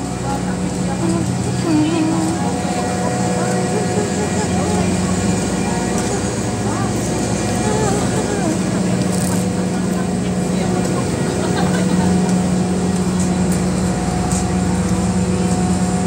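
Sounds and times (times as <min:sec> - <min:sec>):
faint voices talking: 0:00.0 - 0:16.0
low mechanical drone: 0:00.0 - 0:16.0.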